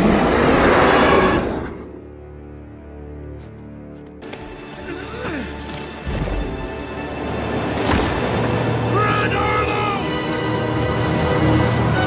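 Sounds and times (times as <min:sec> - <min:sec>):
rushing floodwater rumble: 0:04.6 - 0:12.0.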